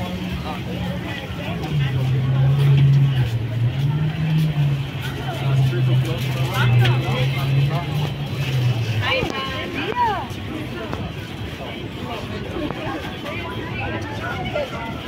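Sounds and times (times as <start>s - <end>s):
passers-by talking: 0.0s - 15.0s.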